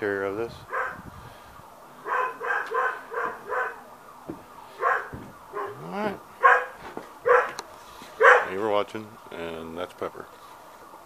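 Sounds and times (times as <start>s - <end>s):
dog barking: 0.7s - 1.0s, 2.0s - 3.8s, 4.8s - 5.8s, 6.4s - 7.6s, 8.2s - 8.6s.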